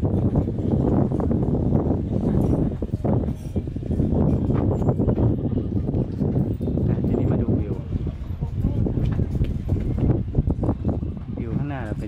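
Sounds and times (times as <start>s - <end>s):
footsteps on wooden deck: 0.0s - 6.9s, 7.5s - 12.0s
low microphone rumble: 0.0s - 12.0s.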